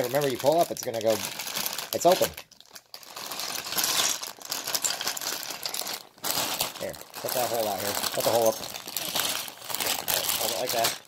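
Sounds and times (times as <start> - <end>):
plastic bag crinkling: 0.0 - 11.0
plastic bricks rattling: 6.8 - 11.0.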